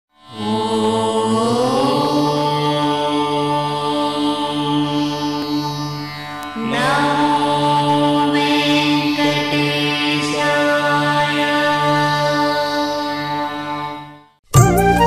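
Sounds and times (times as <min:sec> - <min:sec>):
devotional chant-like music: 0:00.2 - 0:14.2.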